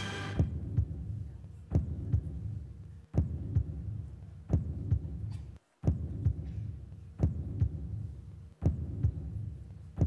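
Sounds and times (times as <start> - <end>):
heartbeat thumps: 0.4 - 10.0.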